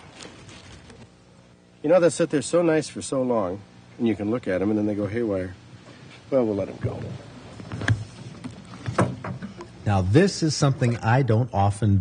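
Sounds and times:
man speaking: 9.8s - 12.0s.

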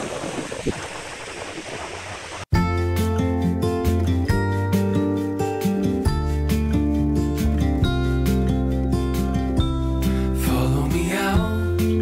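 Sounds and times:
wind on microphone: 0.0s - 2.4s
water noise: 0.0s - 2.6s
music with bass and plucked guitar: 2.6s - 12.0s.

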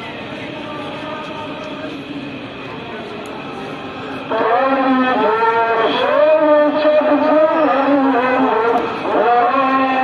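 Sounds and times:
man chanting in held notes: 4.3s - 10.0s.

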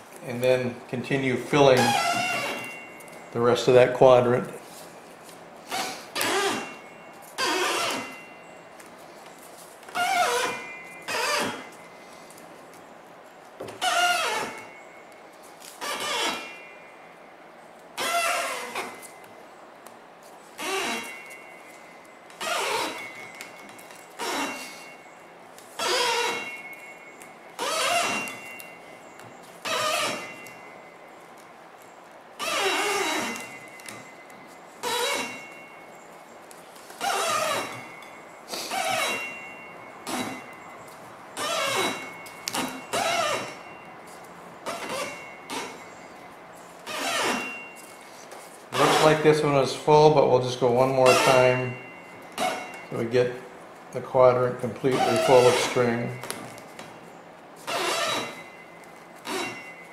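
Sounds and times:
string squeaking: 0.0s - 11.9s, 13.6s - 19.6s, 20.3s - 53.4s, 54.1s - 59.9s.

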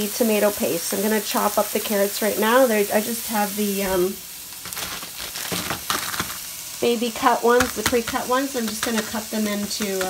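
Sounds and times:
onions sizzling in oil: 0.0s - 10.0s
sharp clicks of frying: 0.0s - 10.0s.

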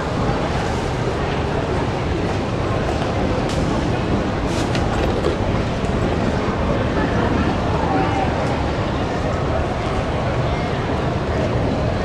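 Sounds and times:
faint crowd voices: 0.0s - 12.0s.

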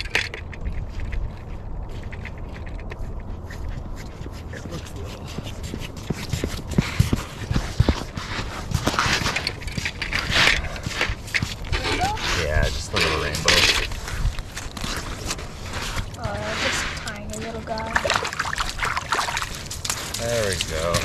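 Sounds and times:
boots crunching on slushy ice: 3.8s - 21.0s.

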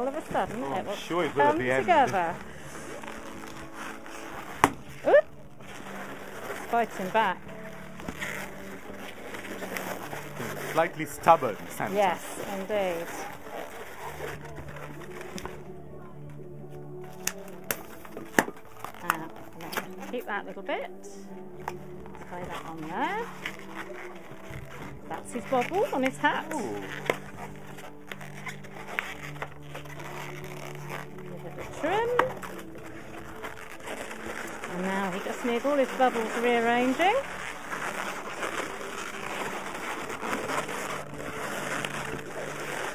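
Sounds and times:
background music: 0.0s - 42.9s
balloons squeaking and snapping: 0.0s - 42.9s.

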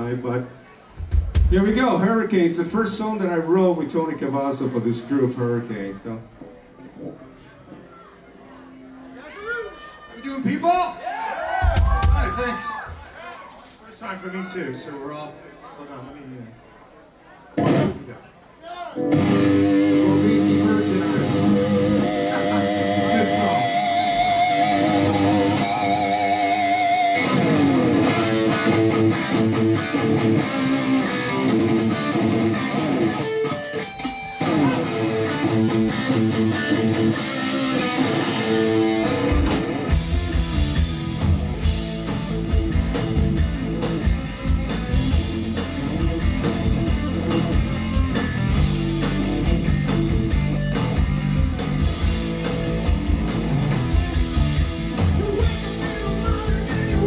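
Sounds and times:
bass and drums: 1.0s - 2.1s, 11.5s - 13.0s, 20.1s - 33.3s, 33.9s - 57.0s
electric guitar riff: 17.6s - 18.1s, 19.0s - 57.0s.

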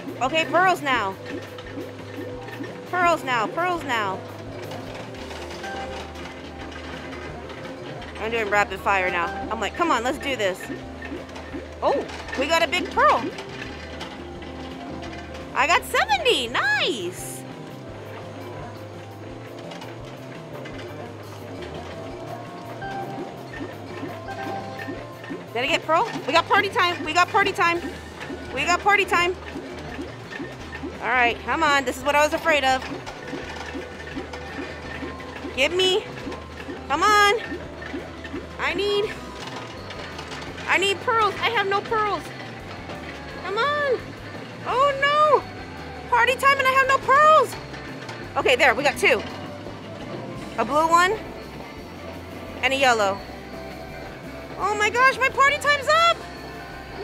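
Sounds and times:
plastic balls rattling: 0.0s - 52.0s
electronic game music: 0.0s - 57.0s
electronic game tones: 21.6s - 29.1s.

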